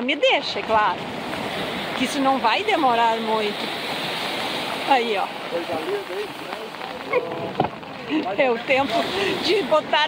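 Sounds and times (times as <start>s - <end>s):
surf washing in: 0.0s - 10.0s
voices: 1.9s - 3.7s, 4.7s - 10.0s.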